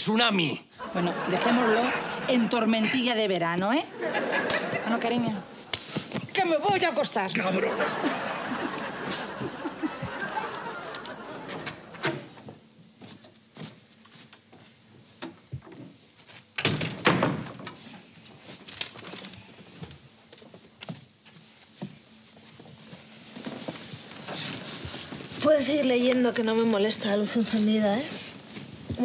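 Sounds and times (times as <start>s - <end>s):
wooden door opening and shutting: 11.5s - 12.5s, 16.6s - 17.9s.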